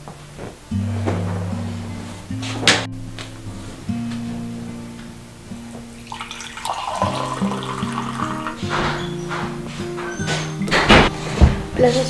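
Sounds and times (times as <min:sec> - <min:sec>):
gentle background music: 0:00.0 - 0:12.0
coffee pouring into glass mugs: 0:06.0 - 0:08.8.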